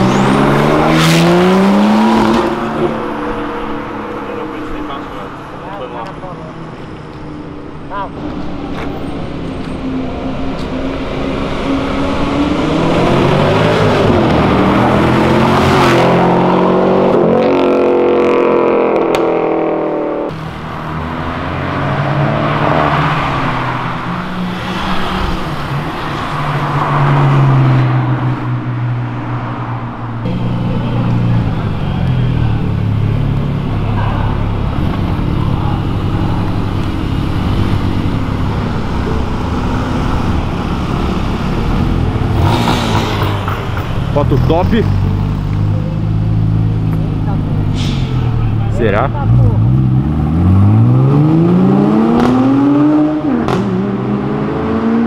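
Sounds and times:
car engine revving: 0:00.0 - 0:55.0
cars accelerating past: 0:00.0 - 0:55.0.

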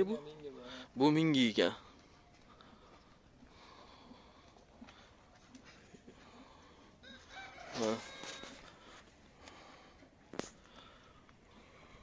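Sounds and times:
rooster crowing: 0:07.0 - 0:08.8.

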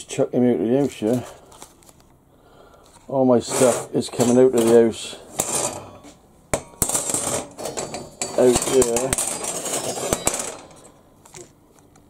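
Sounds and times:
steel strips clinking: 0:03.4 - 0:11.5.

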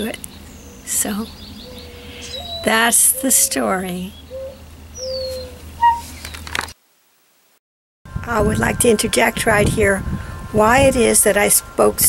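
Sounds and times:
low steady hum: 0:00.0 - 0:06.5, 0:08.1 - 0:12.0
songbird whistling and chirping: 0:00.3 - 0:06.4.

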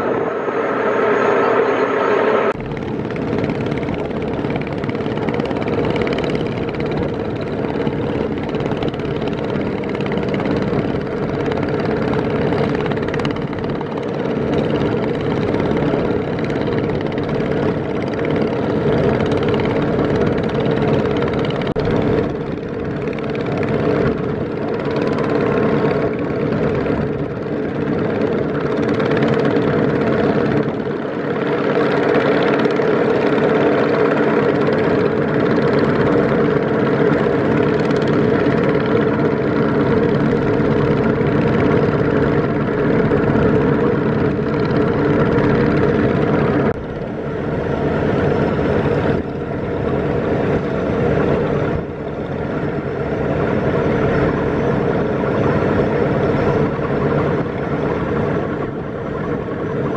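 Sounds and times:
boat engine droning: 0:00.0 - 0:59.9
water rushing along hull: 0:00.0 - 0:59.9.

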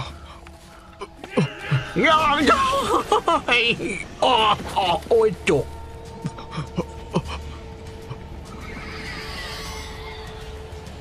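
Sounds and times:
low musical drone: 0:00.0 - 0:11.0
high wavering creature cry: 0:01.2 - 0:02.8, 0:08.5 - 0:10.6.

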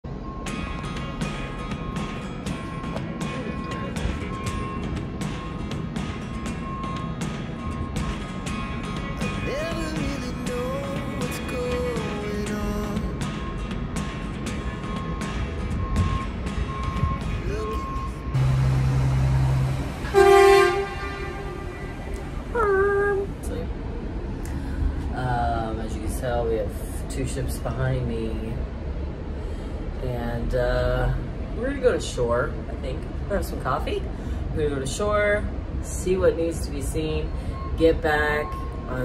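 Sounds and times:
music with beat: 0:00.4 - 0:18.3
person singing: 0:09.2 - 0:13.2, 0:17.4 - 0:18.1
ship's horn blasts: 0:17.4 - 0:22.9.

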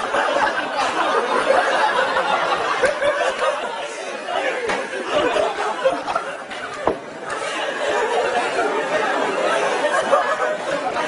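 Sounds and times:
crowd of voices talking: 0:00.0 - 0:11.0.

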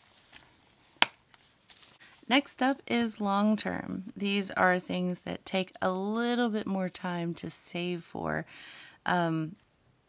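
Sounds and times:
handling rustle: 0:00.0 - 0:02.1.

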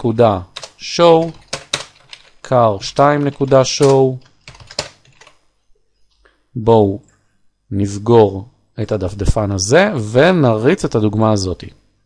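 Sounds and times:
keyboard typing: 0:00.6 - 0:05.4.

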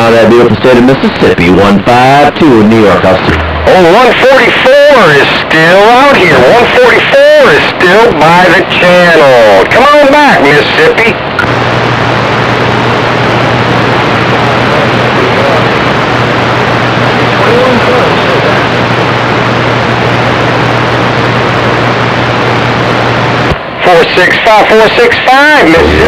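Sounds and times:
radio static hiss: 0:00.0 - 0:26.0
steady low hum: 0:01.3 - 0:06.7, 0:11.2 - 0:23.8, 0:25.6 - 0:26.0.

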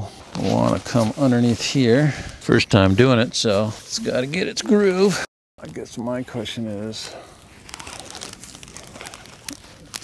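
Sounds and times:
fabric rustling and crinkling: 0:00.1 - 0:02.1, 0:05.7 - 0:10.0.

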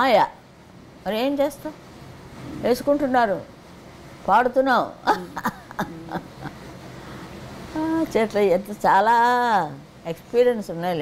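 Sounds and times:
woman's wordless drawn-out voice: 0:01.0 - 0:01.8, 0:02.5 - 0:03.6, 0:07.7 - 0:11.0
woman laughing: 0:05.0 - 0:06.7.

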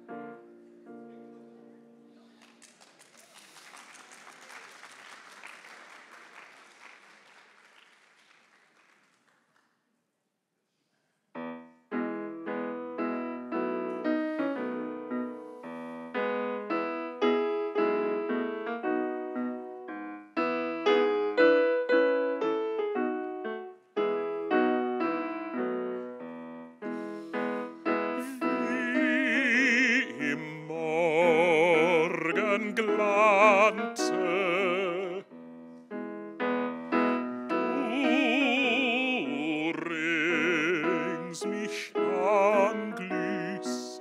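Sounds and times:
digital stage piano solo: 0:00.0 - 0:02.4, 0:11.4 - 0:44.0
light applause: 0:02.2 - 0:10.0.

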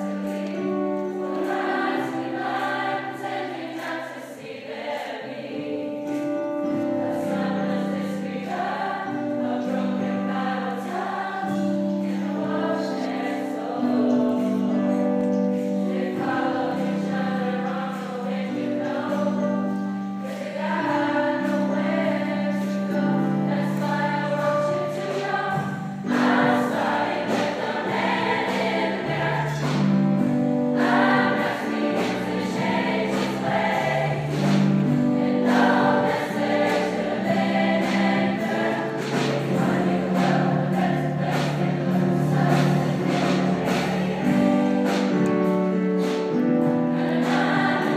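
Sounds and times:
large choir singing held chords: 0:00.0 - 0:47.9.

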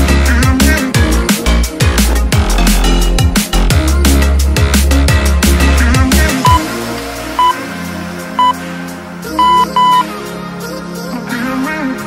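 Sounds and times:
electronic background music: 0:00.0 - 0:12.0
high electronic countdown beeps: 0:06.4 - 0:06.6, 0:07.4 - 0:07.6, 0:08.4 - 0:08.6, 0:09.4 - 0:10.1.

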